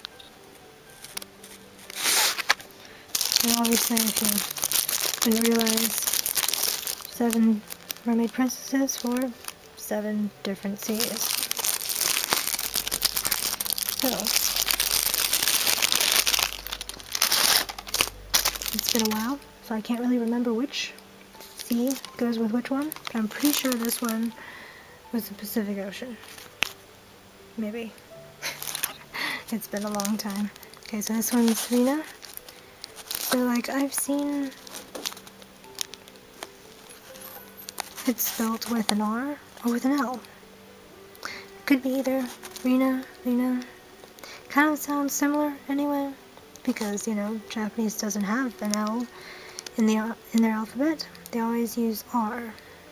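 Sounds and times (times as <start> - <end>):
packaging crinkling: 0.0 - 19.5, 21.4 - 24.8, 26.2 - 26.9, 28.4 - 40.4, 41.2 - 45.4, 46.4 - 52.7
faint background music: 0.0 - 52.9.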